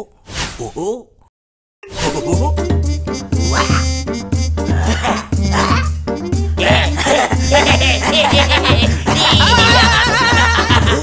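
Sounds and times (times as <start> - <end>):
cartoon background music: 1.8 - 11.0
cartoon character vocal sounds: 3.4 - 4.0, 4.6 - 6.0.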